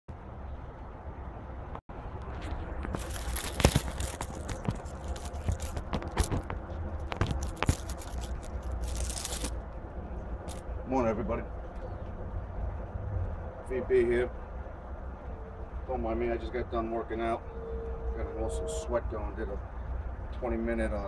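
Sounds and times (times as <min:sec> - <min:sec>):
steady low hum: 0:00.1 - 0:21.0
rustling and crackling with clicks: 0:01.9 - 0:13.6.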